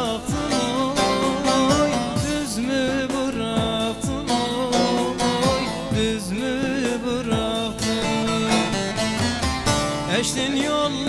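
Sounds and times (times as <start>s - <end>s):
plucked saz folk music: 0.0s - 11.0s.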